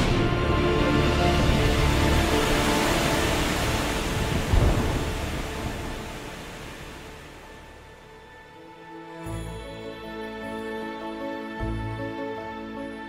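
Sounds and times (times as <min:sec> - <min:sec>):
heavy rain hissing: 0:00.0 - 0:07.8
soft background music: 0:00.0 - 0:13.0
low thunder rumble: 0:03.7 - 0:06.4.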